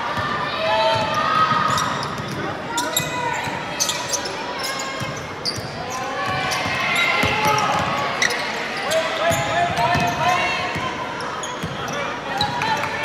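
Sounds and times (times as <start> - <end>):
crowd and player voices: 0.0 - 13.0
sneakers squeaking: 0.9 - 12.9.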